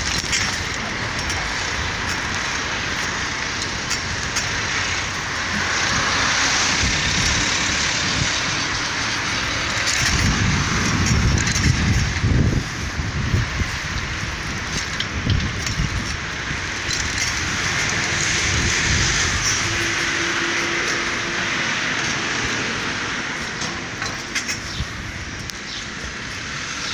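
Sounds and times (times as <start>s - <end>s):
cars driving by: 0.0s - 26.9s.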